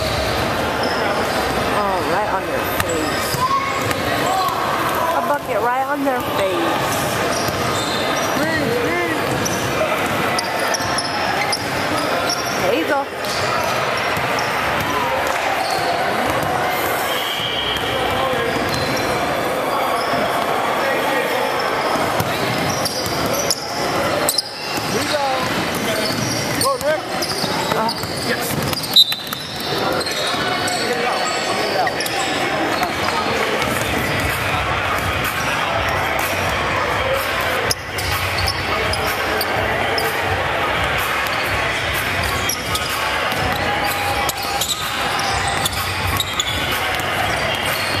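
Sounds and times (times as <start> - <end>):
indistinct echoing voices: 0.0 - 48.0
basketballs bouncing on hardwood: 2.7 - 4.6, 9.2 - 10.3, 24.7 - 30.1.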